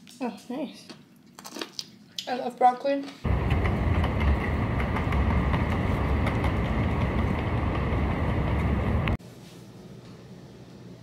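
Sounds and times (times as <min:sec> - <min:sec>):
city street traffic rumble: 0:03.3 - 0:09.2.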